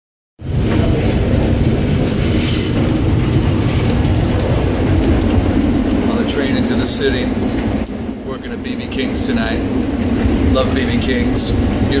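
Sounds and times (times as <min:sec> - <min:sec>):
train wheels rumbling on rail: 0:00.4 - 0:12.0.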